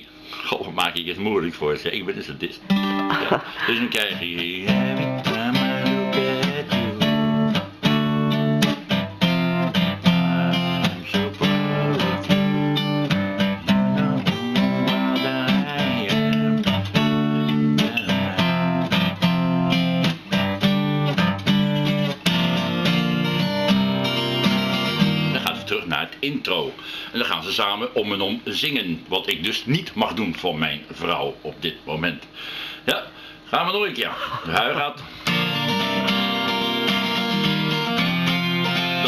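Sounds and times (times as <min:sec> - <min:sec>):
acoustic guitar strumming: 0:02.6 - 0:26.0, 0:34.5 - 0:39.0.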